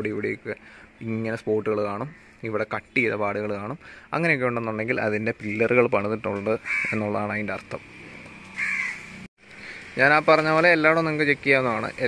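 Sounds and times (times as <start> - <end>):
crow cawing: 6.6 - 7.1, 8.5 - 9.2.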